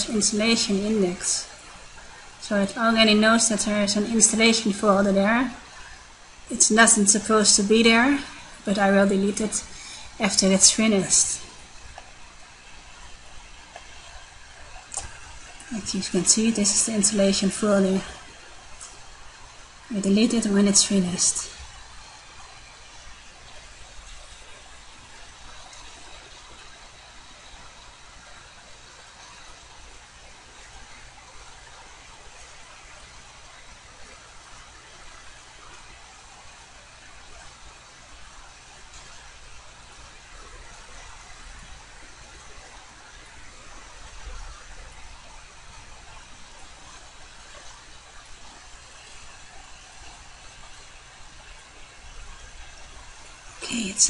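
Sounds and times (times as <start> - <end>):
faint steady hiss: 0.0 - 54.0.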